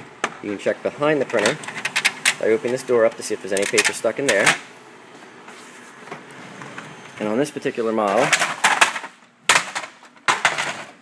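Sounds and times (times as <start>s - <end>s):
plastic printer parts clattering: 1.3s - 4.6s, 8.1s - 11.0s.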